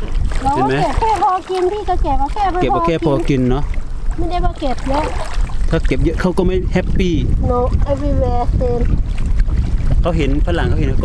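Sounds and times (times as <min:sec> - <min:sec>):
small waves washing against rocks: 0:00.0 - 0:06.0
wind rumble on microphone: 0:00.0 - 0:11.0
person speaking: 0:00.4 - 0:03.4.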